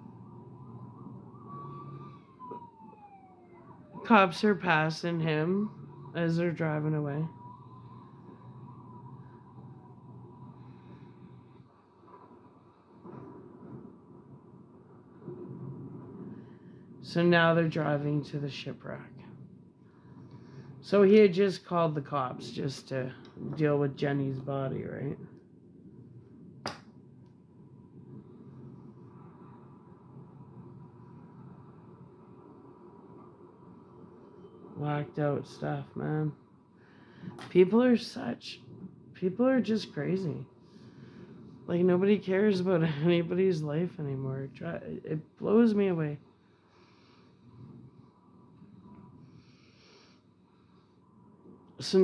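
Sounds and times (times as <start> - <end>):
faint police siren wailing: 0.0 - 26.6, 27.3 - 49.7
low background rumble: 0.0 - 52.0.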